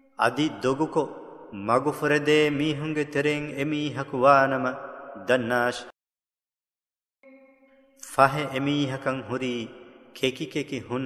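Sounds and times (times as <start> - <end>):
man chanting melodic recitation: 0.0 - 5.9, 8.0 - 11.0.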